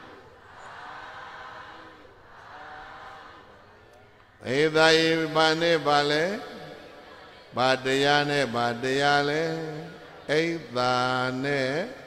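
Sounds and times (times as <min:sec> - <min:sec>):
monk chanting: 0:04.4 - 0:12.0.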